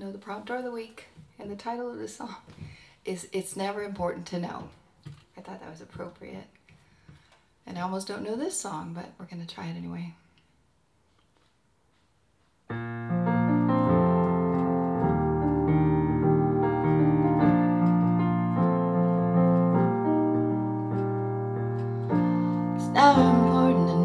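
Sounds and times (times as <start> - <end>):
slow piano chords: 12.7 - 24.0
woman singing: 22.8 - 24.0.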